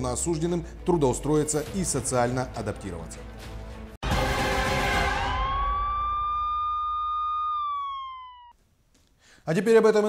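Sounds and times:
siren wail: 4.1 - 8.6.

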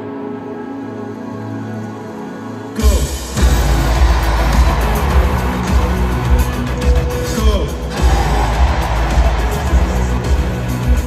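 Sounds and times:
rock-pop band over stadium pa: 2.8 - 11.0.

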